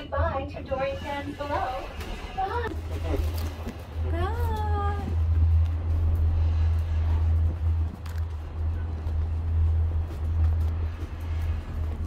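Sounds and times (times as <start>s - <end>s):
gondola cabin low rumble: 0.0s - 12.0s.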